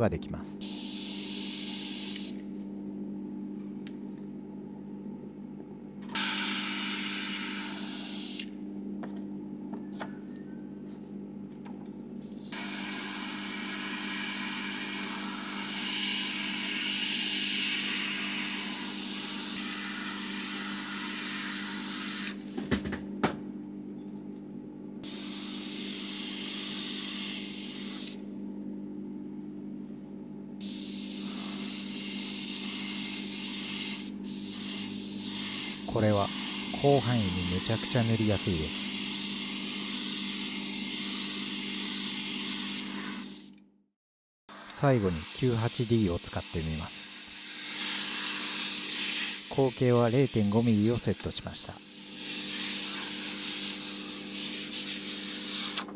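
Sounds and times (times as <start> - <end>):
air compressor humming: 0.0 - 2.6, 6.0 - 8.6, 12.5 - 23.4, 25.0 - 28.3, 30.6 - 43.5
airbrush spraying hiss: 0.6 - 2.4, 30.6 - 37.9, 52.0 - 55.8.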